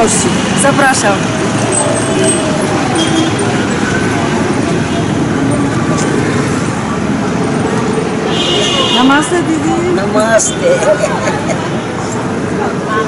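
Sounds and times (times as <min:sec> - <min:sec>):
motorbikes and vehicles passing: 0:00.0 - 0:13.0
people's voices: 0:00.0 - 0:13.0.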